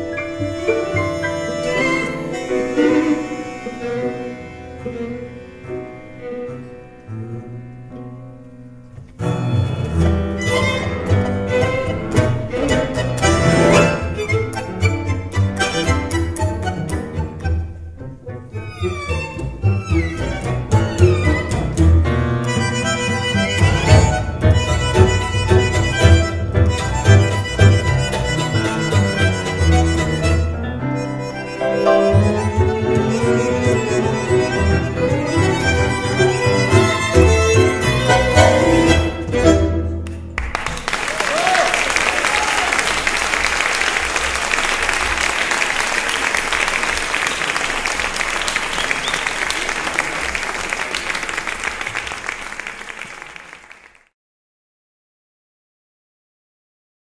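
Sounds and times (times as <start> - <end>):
bandoneon and string notes: 0.0 - 40.4
tango orchestra playing: 0.0 - 53.5.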